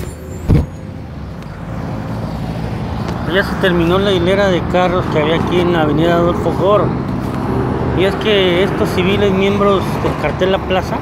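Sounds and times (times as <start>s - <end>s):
short thump: 0.5s - 0.8s.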